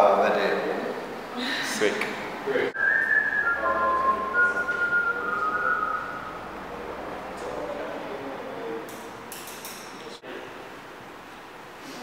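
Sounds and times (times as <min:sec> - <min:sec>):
person whistling a slow tune: 0:02.8 - 0:06.3.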